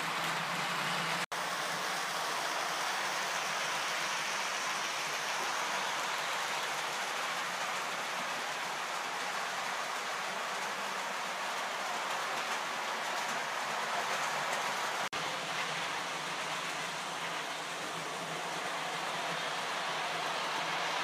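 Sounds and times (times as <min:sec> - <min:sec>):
model train wheels rolling on rails: 0:00.0 - 0:21.0.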